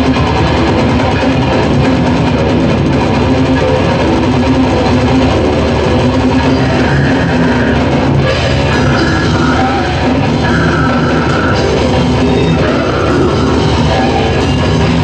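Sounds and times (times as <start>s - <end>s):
death metal band playing live: 0.0s - 15.0s.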